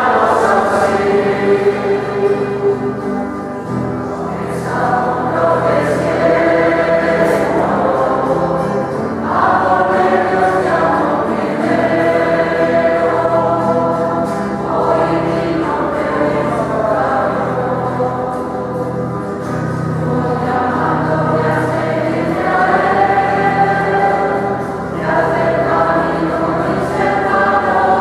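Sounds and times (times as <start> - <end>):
choir singing a hymn: 0.0 - 28.0.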